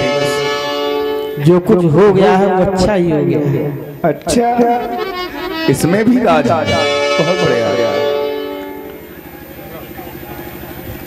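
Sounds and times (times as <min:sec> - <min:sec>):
steady instrument note: 0:00.0 - 0:11.0.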